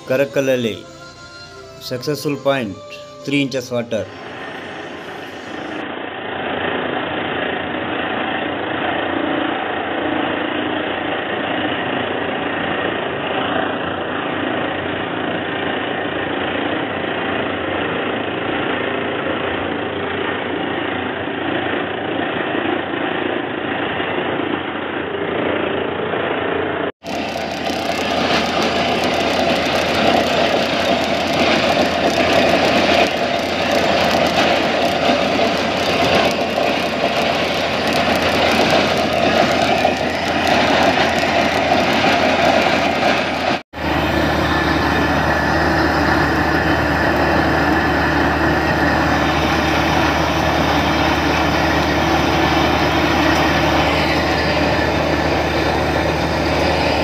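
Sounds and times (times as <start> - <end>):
drilling rig engine and air blast: 3.7 - 16.0, 26.0 - 57.0.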